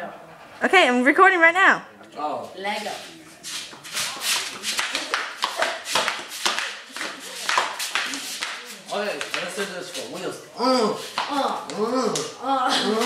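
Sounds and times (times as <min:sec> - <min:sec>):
flip-flops slapping on concrete: 0:02.8 - 0:10.2, 0:11.0 - 0:12.3.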